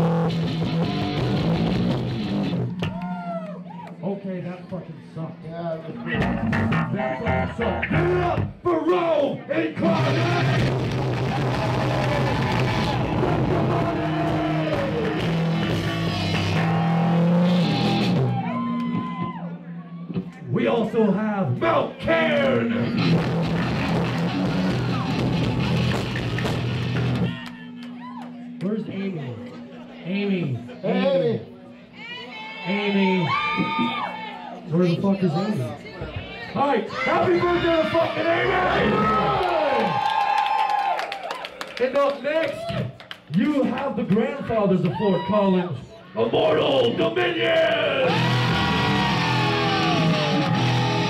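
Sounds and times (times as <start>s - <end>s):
heavy metal band playing: 0.0s - 2.8s, 6.0s - 8.6s, 9.8s - 19.3s, 22.0s - 27.4s, 48.0s - 51.0s
electric guitars through amplifiers: 0.0s - 4.0s, 5.9s - 8.7s, 9.8s - 20.5s, 22.3s - 29.7s, 46.8s - 51.0s
guitar tone bending: 5.9s - 8.7s, 10.0s - 20.6s, 22.2s - 30.0s, 48.0s - 51.0s.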